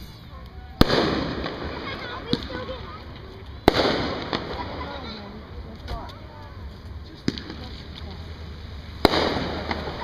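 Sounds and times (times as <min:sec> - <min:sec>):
firework crackling: 0:00.0 - 0:10.0
firework bang: 0:00.8 - 0:05.2, 0:09.0 - 0:10.0
small firework pop: 0:07.2 - 0:08.1.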